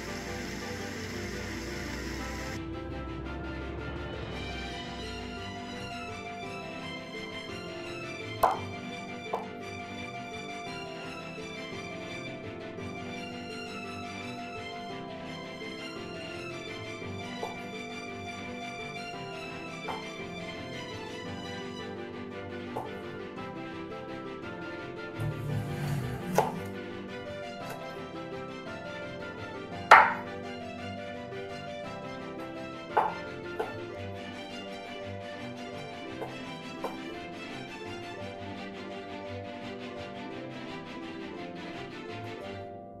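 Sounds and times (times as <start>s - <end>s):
background music: 0.0s - 43.0s
knife chopping on wooden board: 8.4s - 8.6s, 26.2s - 26.7s, 29.9s - 30.2s, 33.0s - 33.8s
knife cutting on wooden board: 25.5s - 26.8s.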